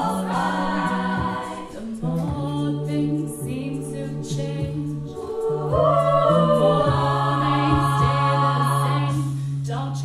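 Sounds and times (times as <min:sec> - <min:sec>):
vocal percussion hits: 0:00.0 - 0:09.6
a cappella group singing: 0:00.0 - 0:10.0.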